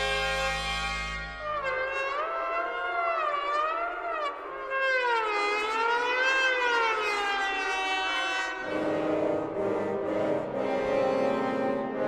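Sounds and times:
held orchestral chord: 0.0s - 1.4s
brass glissandi: 0.0s - 1.9s.

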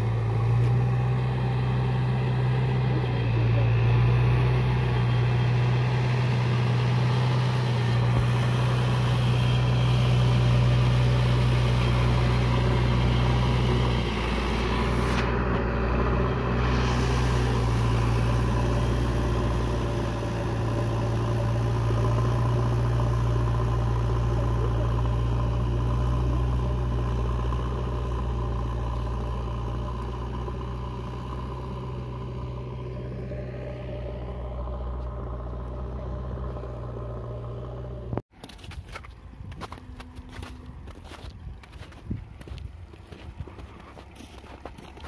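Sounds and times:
diesel engine running: 0.0s - 38.6s, 39.2s - 45.0s
footsteps crunching on snow: 38.4s - 45.0s.

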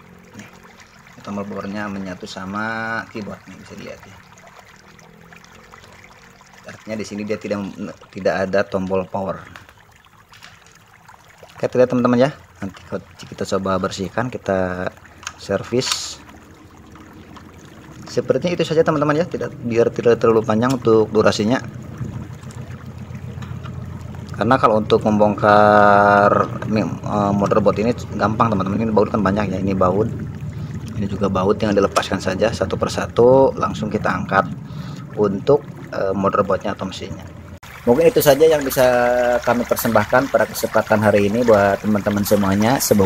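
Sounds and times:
faint low hum: 10.4s - 43.0s.

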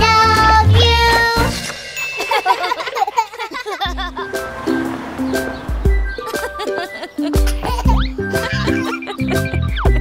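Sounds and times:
child-like voice singing: 0.0s - 1.6s
backing track with bass: 7.4s - 10.0s.

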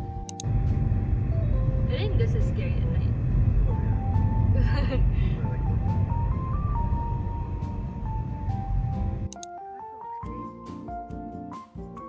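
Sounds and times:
background music: 0.0s - 12.0s
car engine and tyres rumbling: 0.1s - 9.4s.

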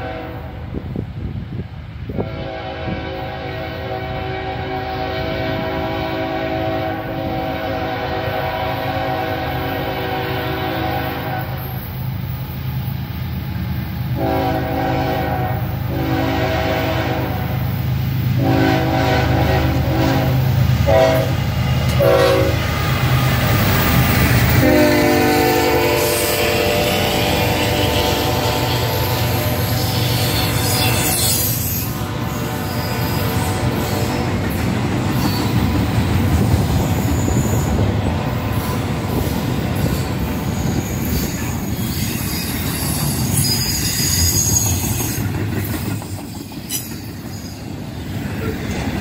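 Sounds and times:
train air horn blasts: 0.0s - 0.8s, 2.1s - 11.9s, 14.2s - 17.6s, 18.4s - 22.6s, 24.5s - 34.3s
diesel locomotive rumble: 0.0s - 49.0s.

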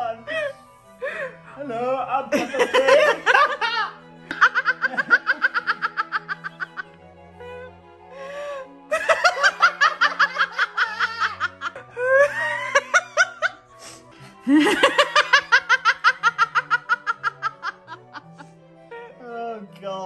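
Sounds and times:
background music with held notes: 0.0s - 20.0s
hearty laughter: 2.3s - 6.9s, 8.9s - 13.6s, 14.4s - 18.5s.

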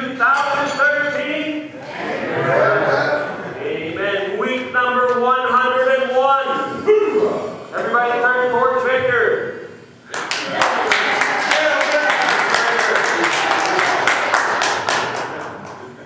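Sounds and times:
man speaking: 3.2s - 9.7s
congregation applauding: 10.1s - 16.0s
voices in applause: 10.1s - 16.0s.

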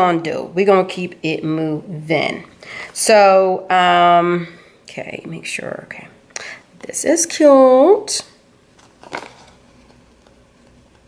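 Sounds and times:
paper rustle: 8.8s - 10.4s.

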